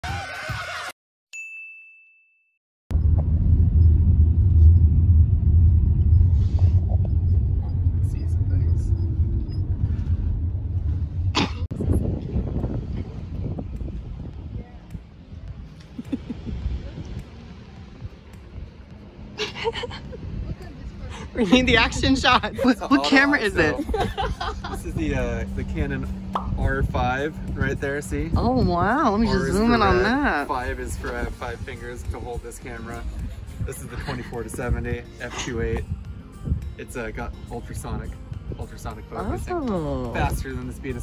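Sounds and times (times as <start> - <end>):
short ding: 1.4 - 2.5
car road and engine noise: 2.9 - 41.0.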